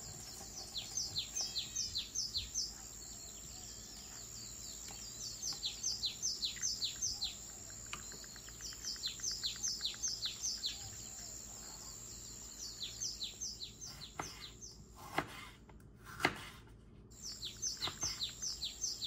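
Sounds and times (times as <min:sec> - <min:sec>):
small bird chirping: 0:00.0 - 0:14.8, 0:17.1 - 0:19.0.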